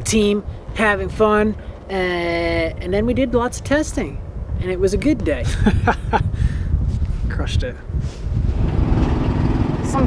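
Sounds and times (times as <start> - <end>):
small vehicle engine running: 8.5 - 10.0.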